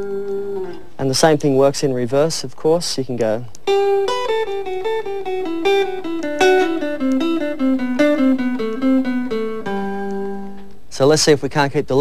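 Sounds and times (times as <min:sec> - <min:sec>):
clean electric guitar descending notes: 0:00.0 - 0:00.9, 0:03.7 - 0:10.7.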